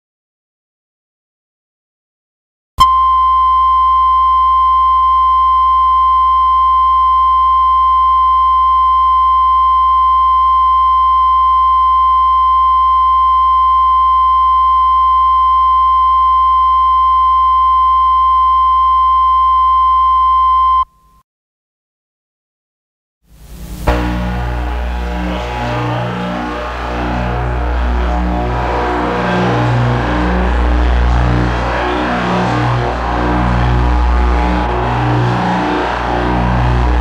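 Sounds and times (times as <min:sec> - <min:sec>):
steady electronic tone: 0:02.8 - 0:20.8, 0:23.4 - 0:37.0
low hum: 0:23.4 - 0:37.0.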